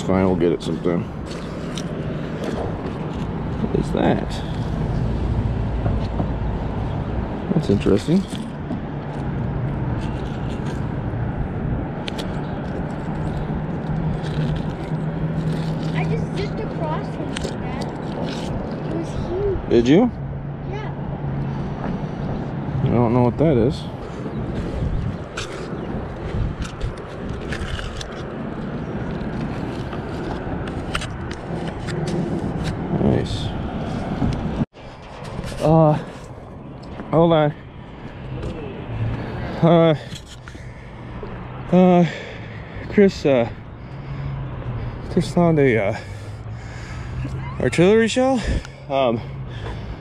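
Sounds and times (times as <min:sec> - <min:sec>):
road traffic rumble: 0:00.0 - 0:50.0
metal clicks and scrapes: 0:25.3 - 0:32.8.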